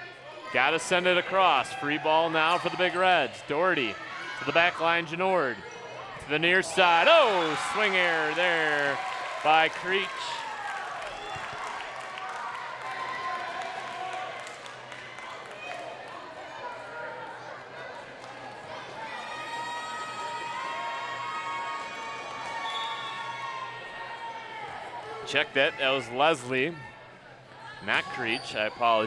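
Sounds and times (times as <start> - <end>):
crowd shouting and cheering: 0.0 - 29.0.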